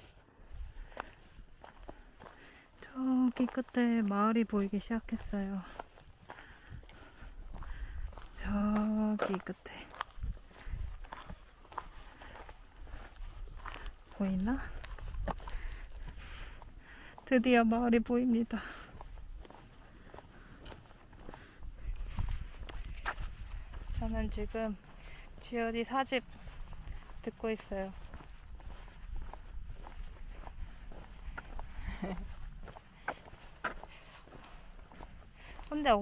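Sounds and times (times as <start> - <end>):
faint footsteps walking: 0.0 - 36.0.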